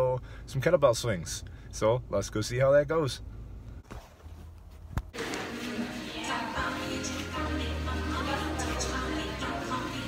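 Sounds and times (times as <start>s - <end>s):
low hum in car cabin: 0.0s - 5.1s
background music: 5.2s - 10.0s.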